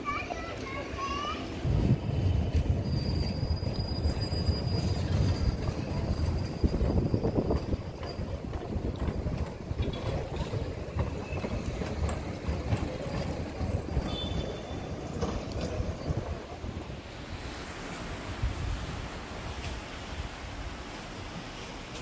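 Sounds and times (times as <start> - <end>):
tram rumbling on rails: 0.0 - 22.0
high rail squeal: 0.8 - 16.8.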